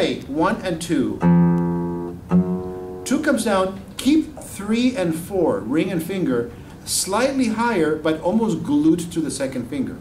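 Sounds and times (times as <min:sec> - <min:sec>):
plucked guitar notes: 0:01.2 - 0:03.9.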